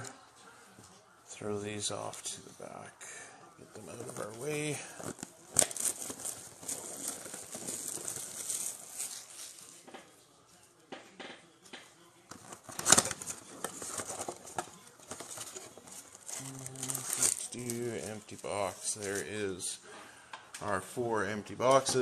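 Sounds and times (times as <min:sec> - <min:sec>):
card packs rustling and crinkling: 0:03.7 - 0:09.8, 0:12.3 - 0:19.7.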